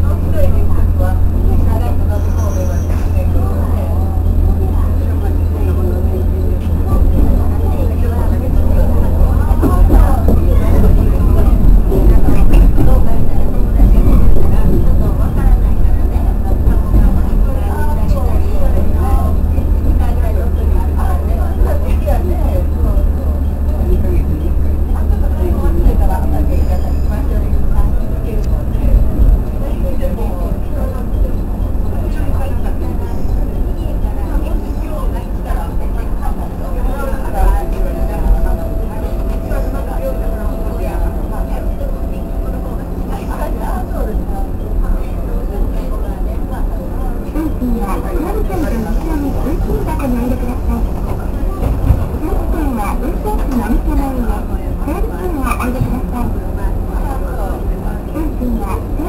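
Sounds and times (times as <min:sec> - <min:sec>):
electric train rumble in cab: 0:00.0 - 0:59.0
indistinct voices: 0:00.0 - 0:59.0
steady tone: 0:35.7 - 0:46.6.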